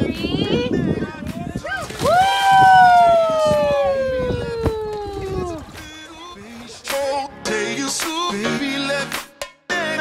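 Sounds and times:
splash into water: 0:01.7 - 0:03.9
girl screaming: 0:02.0 - 0:05.4.

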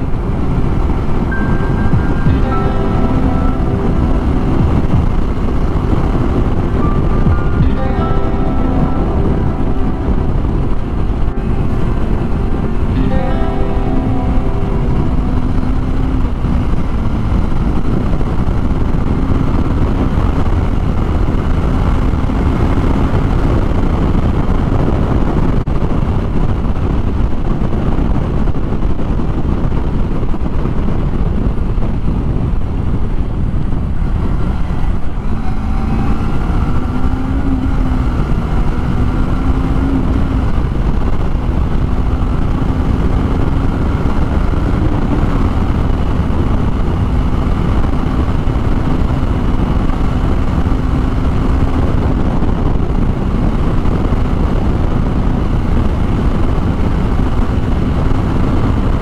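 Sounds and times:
music playing: 0:00.0 - 0:25.0, 0:33.8 - 0:45.4
motorcycle engine running: 0:00.0 - 0:59.0
wind rush on microphone: 0:00.0 - 0:59.0.

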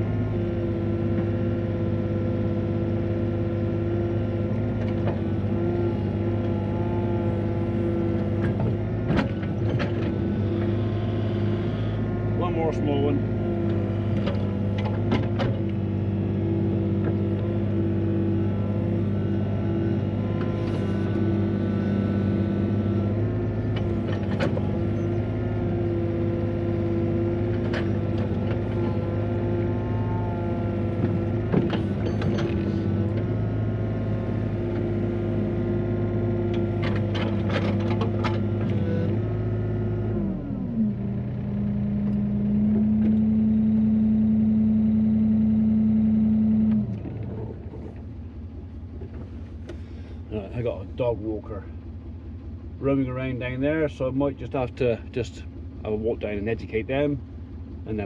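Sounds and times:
excavator engine and hydraulics: 0:00.0 - 0:58.0
excavator clanks and knocks: 0:08.1 - 0:10.8, 0:13.6 - 0:15.8, 0:23.6 - 0:25.2, 0:27.4 - 0:29.3, 0:30.7 - 0:33.4, 0:36.5 - 0:39.2.

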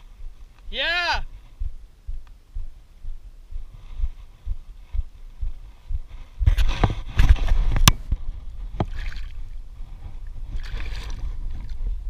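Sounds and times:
steady low rumble: 0:00.0 - 0:12.0
water splashing and sloshing: 0:08.7 - 0:09.6, 0:10.2 - 0:12.0.

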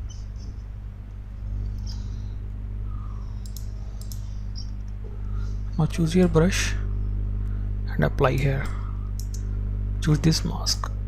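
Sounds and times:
low electrical hum: 0:00.0 - 0:11.0
computer mouse clicks: 0:03.4 - 0:04.7, 0:08.4 - 0:09.4.

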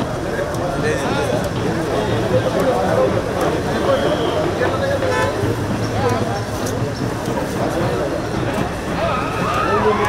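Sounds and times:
crowd talking and calling out: 0:00.0 - 0:10.0
car horn toot: 0:03.8 - 0:05.4.

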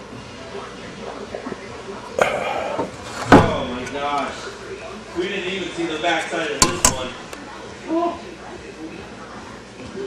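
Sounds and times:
indistinct voices: 0:02.1 - 0:05.1
sharp knock: 0:06.6 - 0:07.2.

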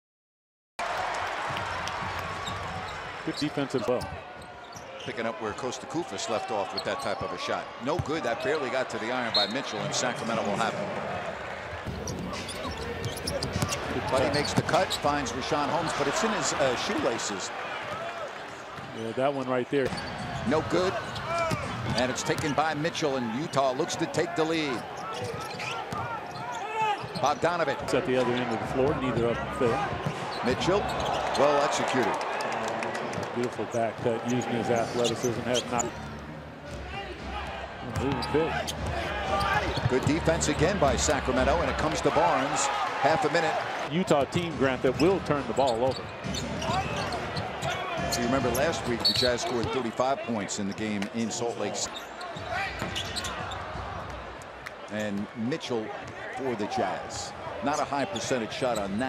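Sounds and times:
sneakers squeaking: 0:02.1 - 0:05.2, 0:09.3 - 0:10.0, 0:11.8 - 0:16.9, 0:19.8 - 0:27.4, 0:29.3 - 0:31.9, 0:32.9 - 0:37.3, 0:37.9 - 0:40.8, 0:45.0 - 0:49.9, 0:51.8 - 0:53.8, 0:58.1 - 0:59.0.

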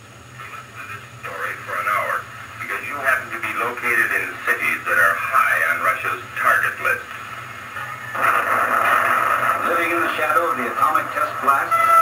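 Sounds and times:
steady low hum: 0:00.0 - 0:12.0
man speaking on old soundtrack: 0:09.6 - 0:11.8.

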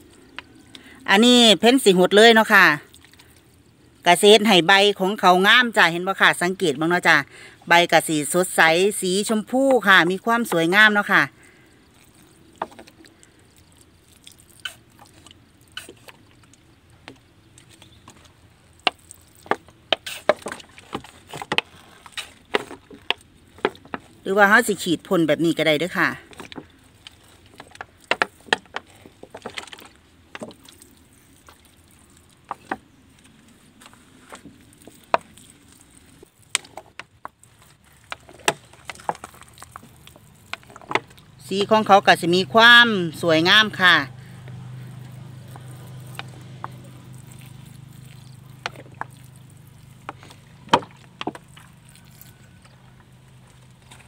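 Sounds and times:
liquid pouring onto leaves and soil: 0:00.0 - 0:04.5, 0:07.2 - 0:54.0.

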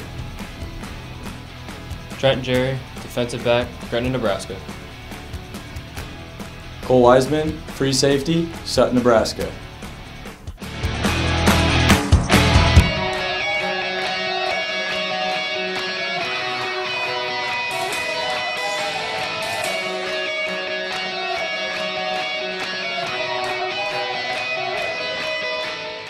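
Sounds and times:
strummed electric guitar music: 0:00.0 - 0:26.0.

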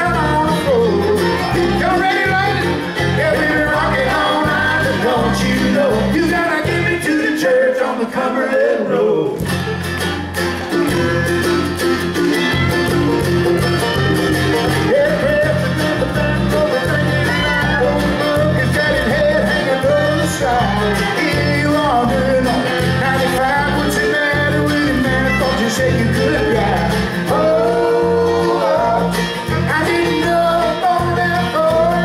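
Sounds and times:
bass guitar: 0:00.0 - 0:07.9, 0:09.2 - 0:32.0
bluegrass band playing: 0:00.0 - 0:32.0.

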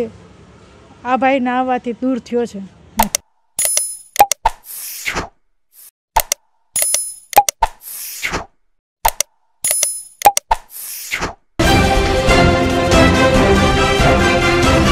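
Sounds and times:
sharp clicks: 0:03.0 - 0:04.7, 0:06.2 - 0:08.1, 0:09.0 - 0:11.0.

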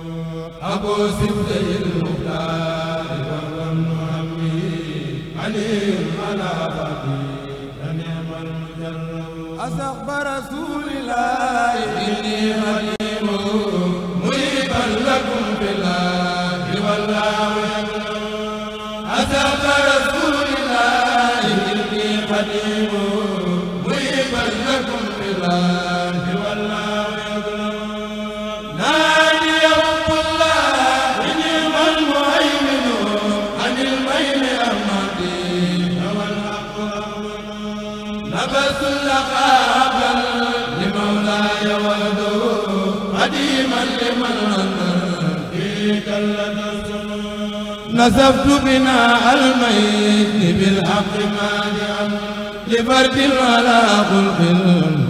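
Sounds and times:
men chanting through microphones: 0:00.0 - 0:55.0.

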